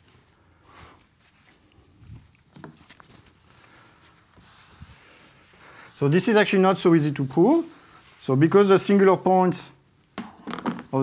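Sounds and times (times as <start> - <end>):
faint footsteps and shuffling: 0.0 - 8.4.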